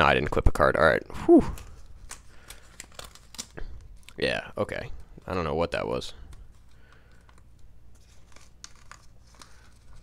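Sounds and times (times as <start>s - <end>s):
paper envelope crinkling: 1.5s - 4.4s, 5.1s - 10.0s
paper ripping: 1.6s - 3.6s, 7.9s - 10.0s.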